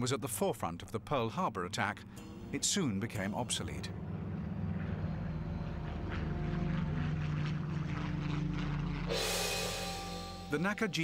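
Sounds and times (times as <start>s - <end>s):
propeller aircraft engine droning: 1.9s - 11.0s
music: 2.0s - 11.0s.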